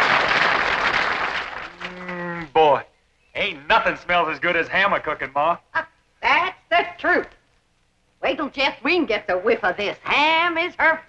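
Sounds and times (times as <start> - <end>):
man talking: 2.4 - 5.7.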